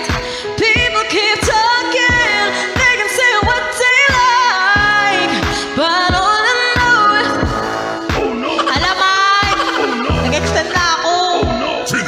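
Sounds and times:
woman singing pop song: 0:00.0 - 0:12.0
instrumental accompaniment: 0:00.1 - 0:12.0
kick drum beat: 0:00.8 - 0:11.7.

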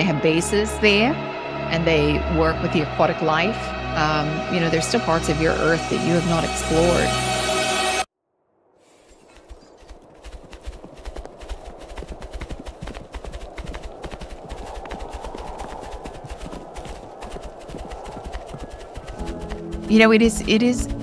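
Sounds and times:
horses galloping: 0:09.1 - 0:21.0.

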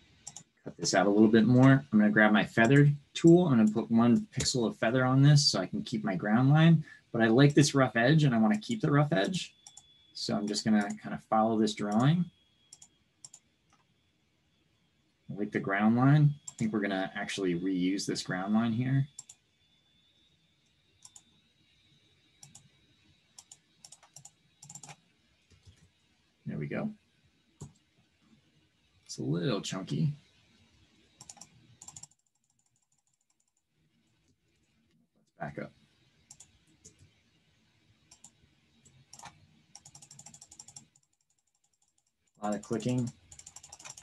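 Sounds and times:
computer mouse clicking: 0:00.2 - 0:00.5, 0:02.6 - 0:02.8, 0:09.2 - 0:09.9, 0:11.8 - 0:13.9, 0:16.4 - 0:16.8, 0:19.1 - 0:19.4, 0:20.6 - 0:26.1, 0:27.6 - 0:27.9, 0:30.2 - 0:34.8, 0:36.2 - 0:37.3, 0:38.0 - 0:44.0
mouse and keyboard clicks: 0:23.4 - 0:25.9, 0:31.2 - 0:33.6, 0:38.1 - 0:41.0, 0:42.6 - 0:44.0.

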